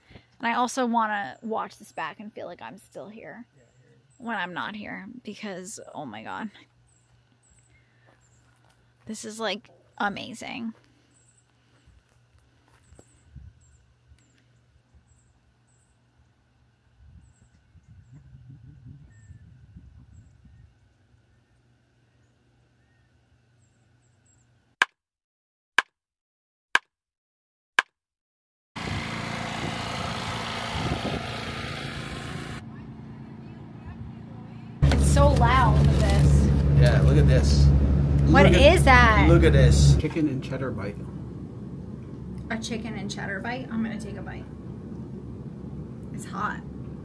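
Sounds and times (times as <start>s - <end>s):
small birds chirping: 1.2s - 5.2s, 6.3s - 12.0s, 12.6s - 16.3s
low mechanical hum: 28.8s - 47.0s
indistinct talking: 32.7s - 47.0s
low rumble: 32.7s - 47.0s.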